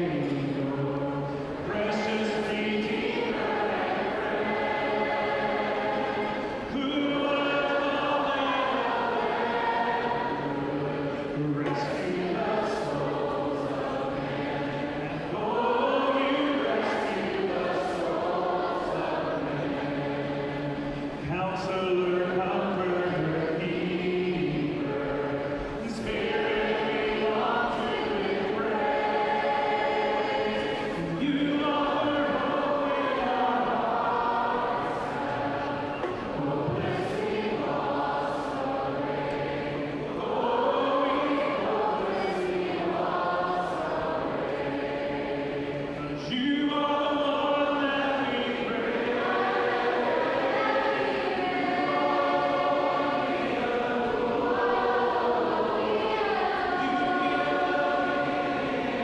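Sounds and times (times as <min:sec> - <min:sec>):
crowd singing worship song: 0:00.0 - 0:59.0.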